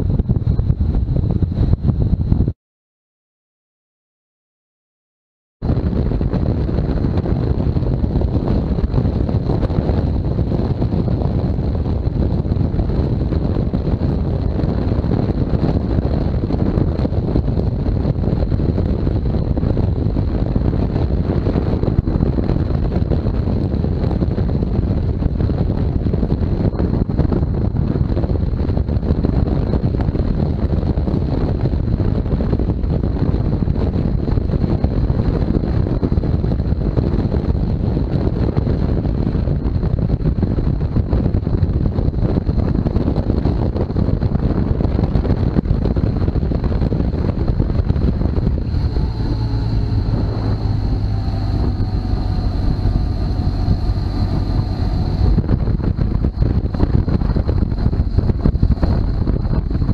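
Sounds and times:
wind buffeting microphone: 0:00.0 - 0:02.6, 0:05.6 - 0:59.9
motorcycle engine running: 0:05.6 - 0:59.9.

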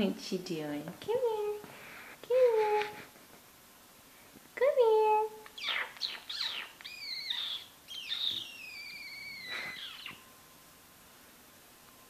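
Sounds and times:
cat chirping: 0:05.4 - 0:10.3.

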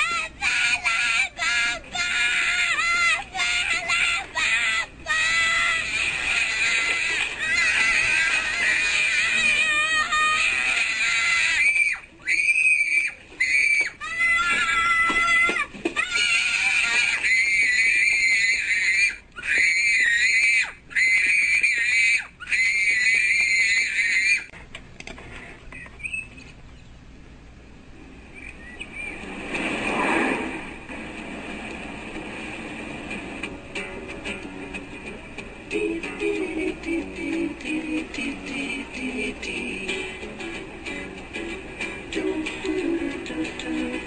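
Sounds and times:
child screaming and wailing: 0:00.0 - 0:24.5.

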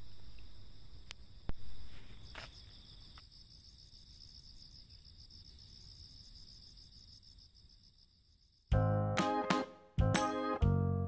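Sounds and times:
crickets chirring: 0:00.0 - 0:08.7.

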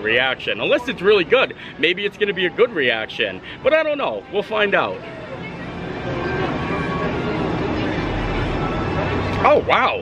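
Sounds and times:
distant crowd chatter: 0:00.0 - 0:10.0.

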